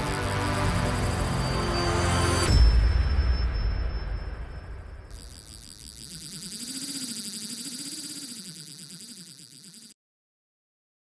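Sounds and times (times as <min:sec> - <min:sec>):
low wavering tone: 0:00.0 - 0:10.0.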